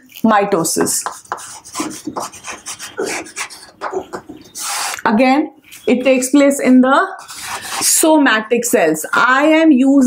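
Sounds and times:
chalk scratching on a chalkboard: 0:00.8 - 0:05.0, 0:07.2 - 0:08.1.

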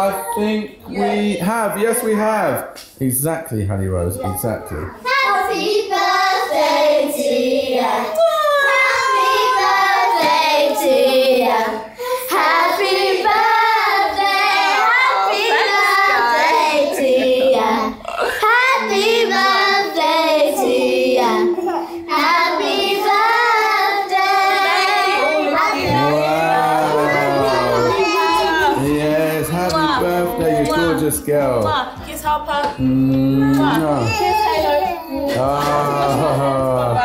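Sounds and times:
high young voices singing: 0:04.2 - 0:37.0.

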